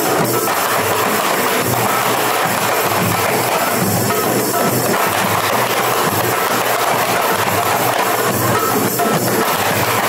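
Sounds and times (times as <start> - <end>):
percussion ensemble drumming: 0.0 - 10.0.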